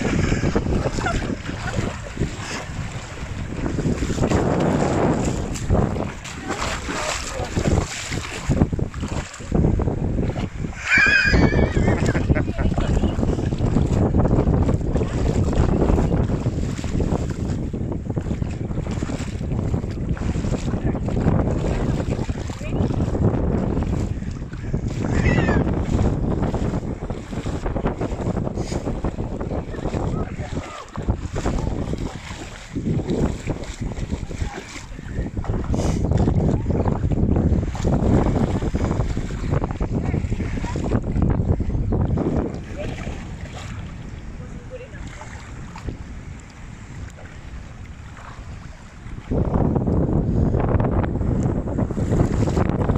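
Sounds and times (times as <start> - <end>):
wind buffeting microphone: 0.0 - 52.9
dog splashing in water: 4.0 - 9.5.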